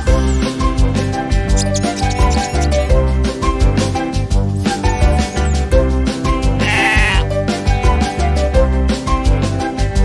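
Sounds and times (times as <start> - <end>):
background music: 0.0 - 10.0
sheep bleating: 6.6 - 7.3.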